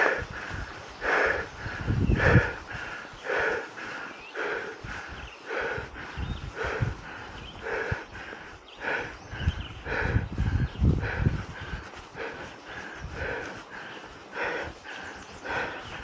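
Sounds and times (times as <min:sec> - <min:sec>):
cyclist breathing hard: 0:00.0 - 0:16.0.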